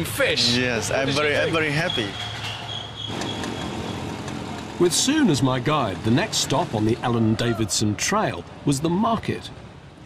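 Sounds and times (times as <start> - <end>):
motor scooters humming: 0.0 - 7.6.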